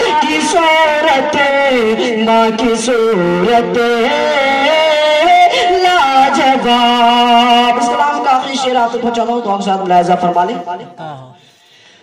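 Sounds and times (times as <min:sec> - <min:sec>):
man singing devotional song: 0:00.0 - 0:11.6.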